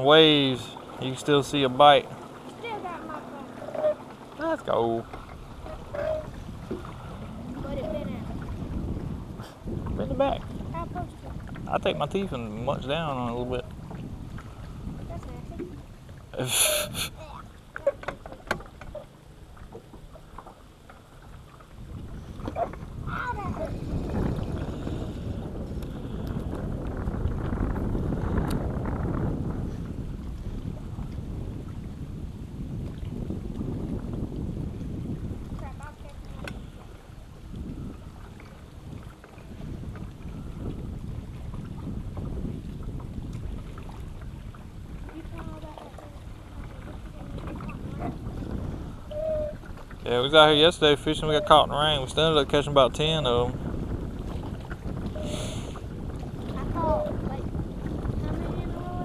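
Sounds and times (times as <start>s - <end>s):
waves slapping boat hull: 0.0s - 59.0s
wind rumbling on microphone: 0.0s - 59.0s.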